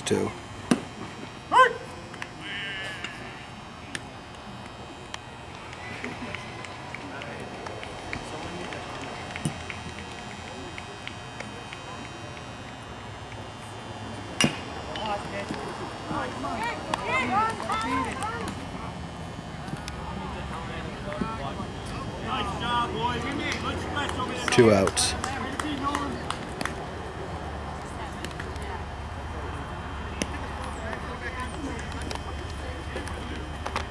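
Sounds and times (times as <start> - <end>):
spectators chattering: 0.0 - 33.9
people shouting: 1.5 - 3.5.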